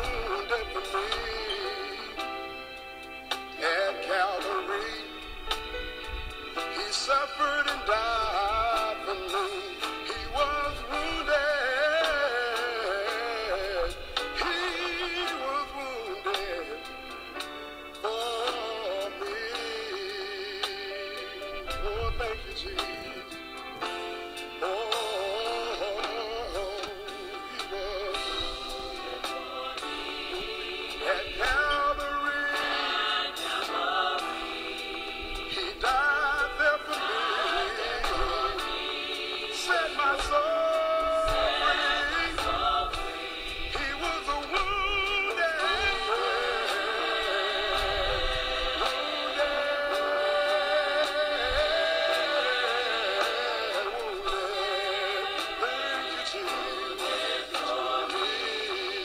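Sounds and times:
gospel song playing: 0.0 - 59.0.

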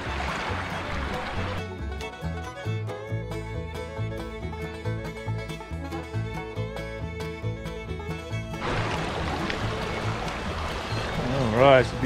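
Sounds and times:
creek running over stones: 0.0 - 1.7, 8.5 - 12.0
bluegrass music: 0.0 - 12.0.

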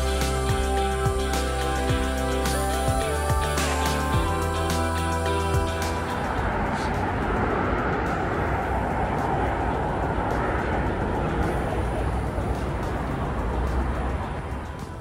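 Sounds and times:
low rumble: 0.0 - 15.0
rushing outdoor noise: 0.0 - 15.0.

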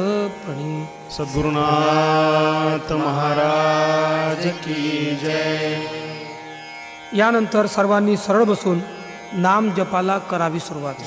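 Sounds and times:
man chanting: 0.0 - 6.4, 7.1 - 11.0
steady drone: 0.0 - 11.0.

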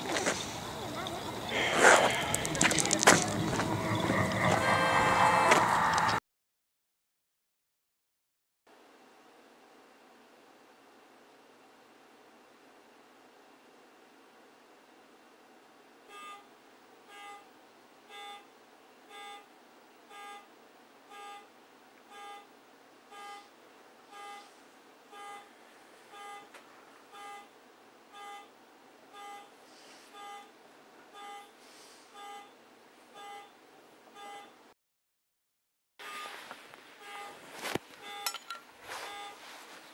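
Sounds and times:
low steady hiss: 0.0 - 4.1, 8.7 - 34.7, 36.0 - 39.9
short alarm beeps: 16.1 - 16.4, 17.1 - 17.4, 18.1 - 18.5, 19.1 - 19.5, 20.1 - 20.5, 21.1 - 21.5, 22.1 - 22.5, 23.1 - 23.5, 24.2 - 24.5, 26.2 - 26.5, 27.2 - 27.5, 28.2 - 28.5, 29.2 - 29.5, 30.2 - 30.5, 31.2 - 31.5, 32.2 - 32.5, 33.2 - 33.5, 34.2 - 34.6, 38.0 - 39.4.

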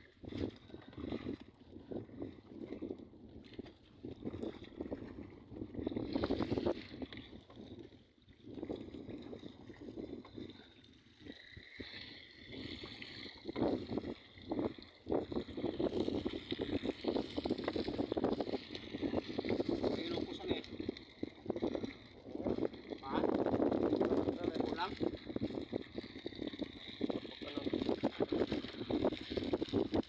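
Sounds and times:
wind buffeting microphone: 0.0 - 30.0
water sloshing against net: 8.7 - 30.0.

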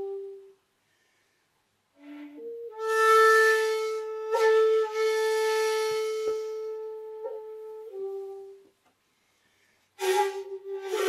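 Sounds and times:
shakuhachi long note: 0.0 - 0.6, 2.0 - 8.7, 10.0 - 11.0.

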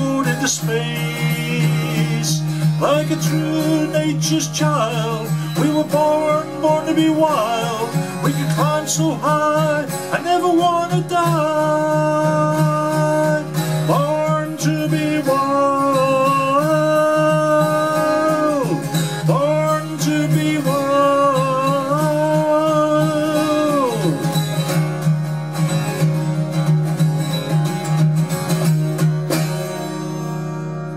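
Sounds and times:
acoustic guitar strummed: 0.0 - 30.9.

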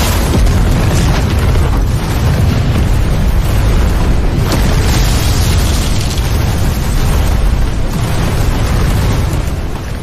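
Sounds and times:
explosion rumble: 0.0 - 10.0.

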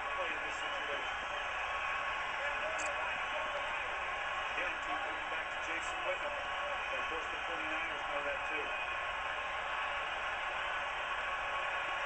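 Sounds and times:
stadium crowd noise on television: 0.0 - 12.0
faint indistinct voices: 1.8 - 8.8.

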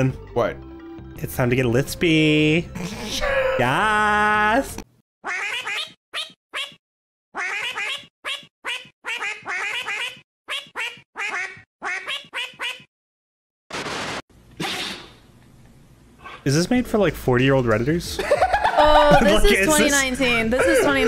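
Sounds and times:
duck quacking: 5.3 - 6.8, 7.4 - 12.9.

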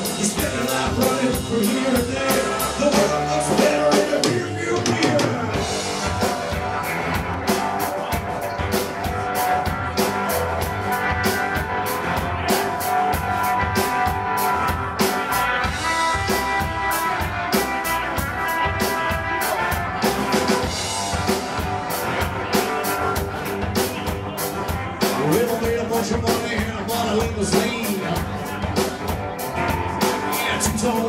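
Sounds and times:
drums driving beat: 0.0 - 31.0
rock and roll band playing: 0.0 - 31.0.

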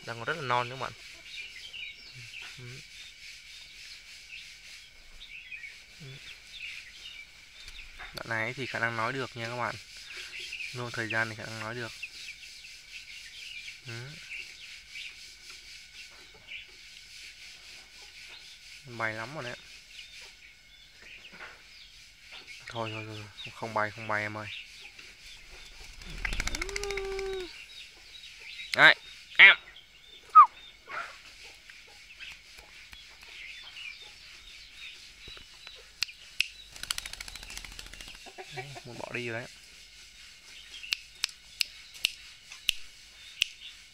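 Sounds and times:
birds chirping: 0.0 - 43.9
steady high hiss: 0.0 - 43.9
wingbeats of bird taking off: 25.6 - 27.6, 36.7 - 38.3
bird squawk gliding down: 26.0 - 27.6, 30.3 - 31.1.

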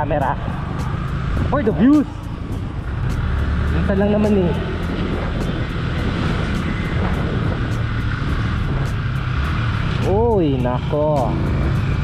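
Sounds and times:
motorcycle engine rumbling: 0.0 - 12.0
wind and road noise: 0.0 - 12.0.

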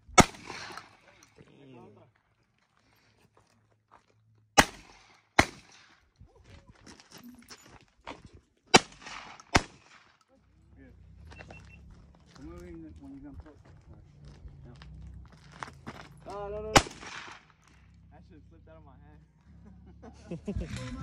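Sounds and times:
shotgun shots: 0.0 - 1.2, 4.6 - 6.0, 8.7 - 10.2, 16.7 - 17.6.

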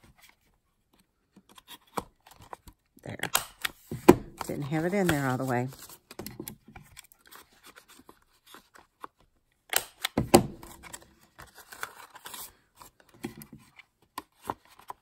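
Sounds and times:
paper handling: 3.7 - 6.2.

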